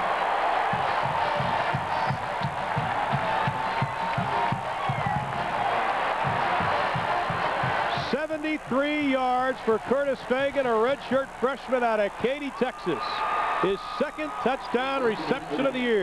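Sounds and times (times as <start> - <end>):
crowd cheering: 0.0 - 16.0
steady drum beat: 0.6 - 9.4.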